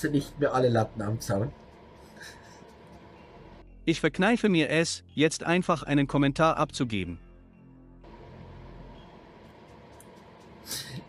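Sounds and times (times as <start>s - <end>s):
faint hiss and hum: 0.0s - 5.0s, 8.1s - 11.0s.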